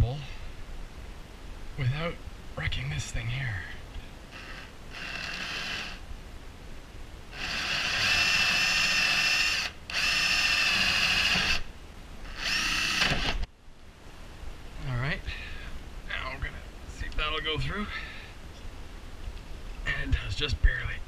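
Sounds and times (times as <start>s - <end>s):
cordless drill motor whining: 4.3s - 6.0s, 7.3s - 11.7s, 12.3s - 13.5s.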